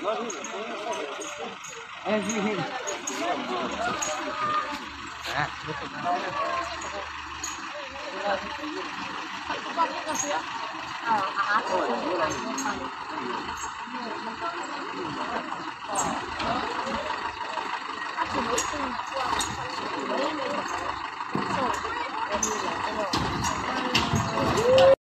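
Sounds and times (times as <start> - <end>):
people laughing: 0.0 - 21.8
car engine running: 0.0 - 25.0
people talking and calling out: 0.0 - 25.0.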